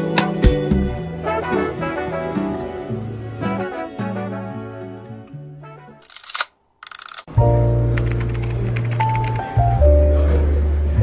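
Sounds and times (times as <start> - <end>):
camera shutter clicks: 6.0 - 7.3
background music with low bass: 7.4 - 11.0.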